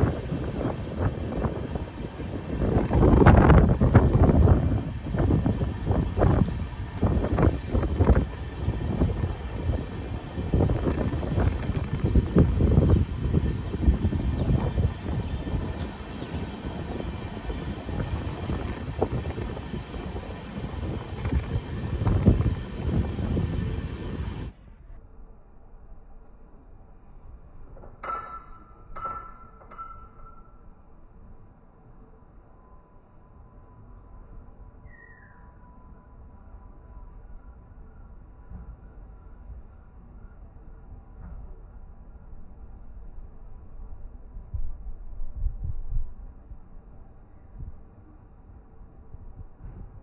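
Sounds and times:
wind buffeting microphone: 0.0s - 24.6s, 42.4s - 50.0s
passenger train running: 0.0s - 24.8s.

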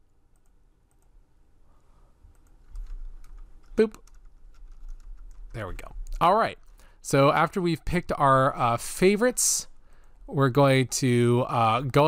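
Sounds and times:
keyboard and mouse clicks: 2.3s - 6.8s.

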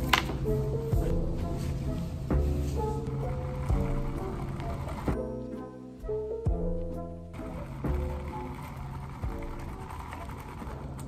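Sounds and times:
soft background music: 0.0s - 11.0s
ice cubes rattling in plastic cup: 7.6s - 11.0s.

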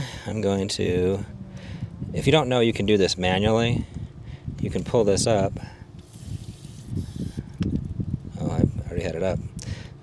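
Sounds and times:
steady hiss: 6.0s - 7.6s.

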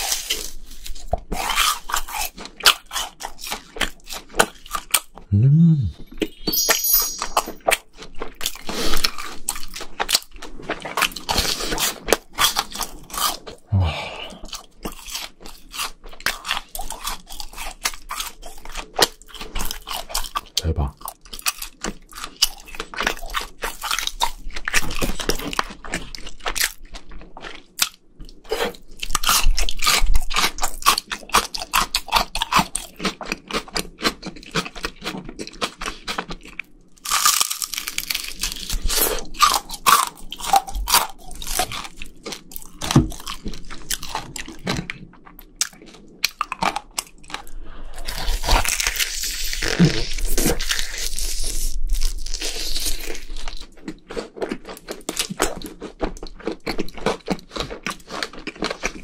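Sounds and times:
chewing crunchy fried food: 0.0s - 5.3s, 7.8s - 59.0s.

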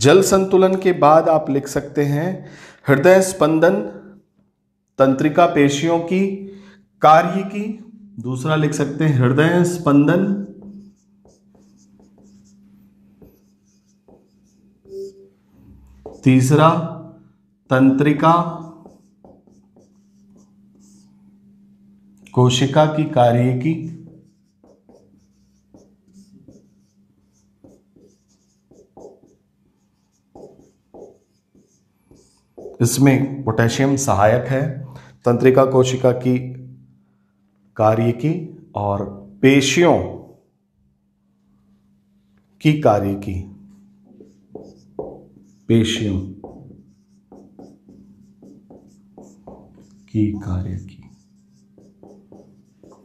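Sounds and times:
low electrical hum: 0.0s - 53.0s
marker squeaking on whiteboard: 10.4s - 16.4s, 18.5s - 21.1s, 24.0s - 33.0s, 44.1s - 53.0s.

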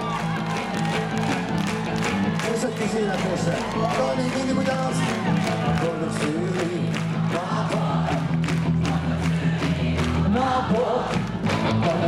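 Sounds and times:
people singing: 5.2s - 12.0s.

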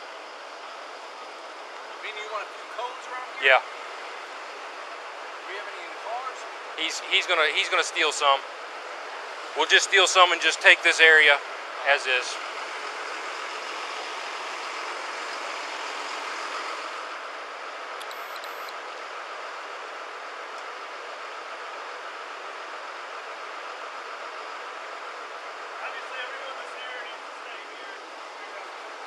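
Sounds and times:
vehicle engines idling: 0.0s - 29.0s
faint voices: 2.0s - 3.6s, 5.4s - 8.4s, 9.6s - 12.4s.

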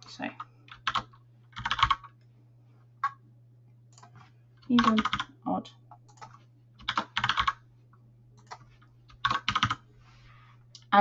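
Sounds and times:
faint steady low hum: 0.0s - 11.0s
typing on computer keyboard: 0.7s - 2.2s, 3.9s - 5.3s, 6.0s - 7.6s, 8.4s - 9.8s.

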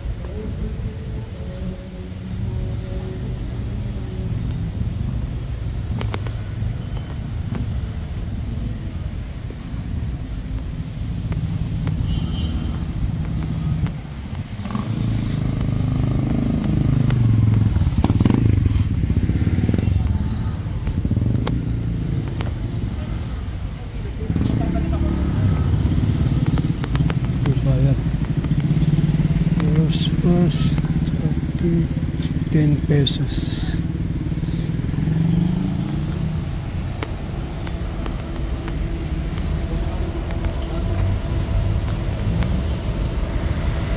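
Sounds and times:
street noise: 0.0s - 43.9s
motorcycle engine running: 9.0s - 43.9s.

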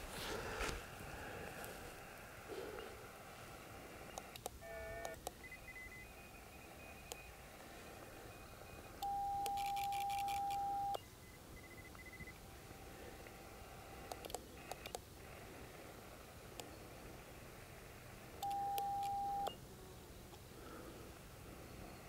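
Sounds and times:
radio beeps: 4.0s - 12.4s, 18.4s - 19.6s.

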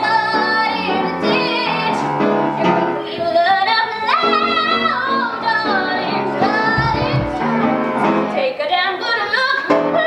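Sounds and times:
upright piano accompaniment: 4.0s - 8.4s
woman singing with vibrato: 5.5s - 7.7s.

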